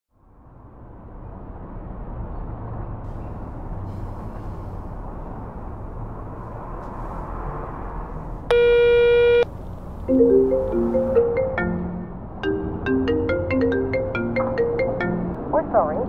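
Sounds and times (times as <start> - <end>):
steady telephone tone: 8.5 - 9.5.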